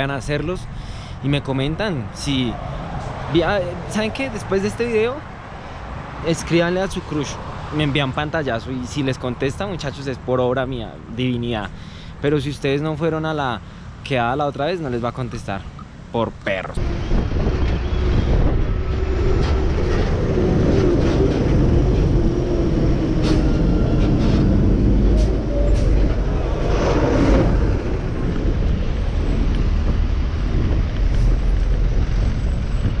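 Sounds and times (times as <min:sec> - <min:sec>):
deep steady traffic rumble: 0:00.0 - 0:33.0
truck and car engines running: 0:00.0 - 0:33.0.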